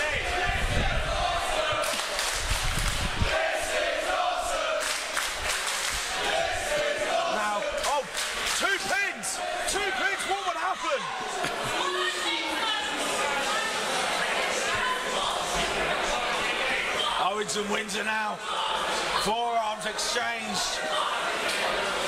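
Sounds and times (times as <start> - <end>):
crowd clapping and shouting: 0.0 - 17.7, 19.4 - 22.0
rhythmic crowd chant: 0.0 - 22.0.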